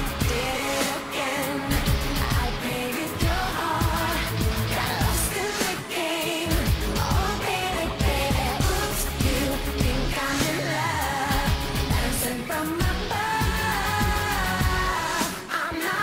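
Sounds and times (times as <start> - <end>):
live pop band with heavy beat: 0.0 - 16.0
woman singing: 0.0 - 16.0.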